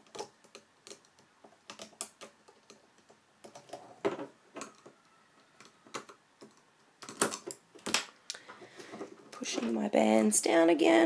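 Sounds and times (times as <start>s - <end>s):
plastic clicks and taps on loom: 0.0s - 3.8s, 4.6s - 8.1s.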